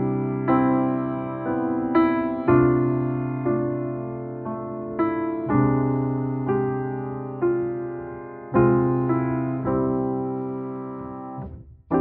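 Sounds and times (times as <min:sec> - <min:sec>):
slow gentle piano chords: 0:00.0 - 0:12.0.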